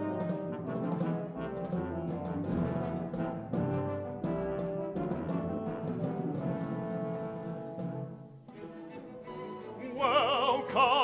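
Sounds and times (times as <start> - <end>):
timpani strokes: 0.0 - 11.0
wind and string chords: 0.0 - 11.0.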